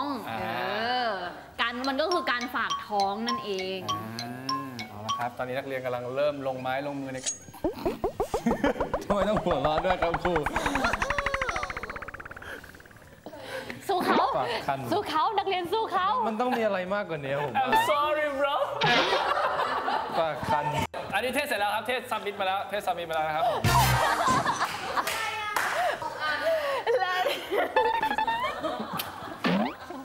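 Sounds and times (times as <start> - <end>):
rapid rattling: 7.8 - 13.3.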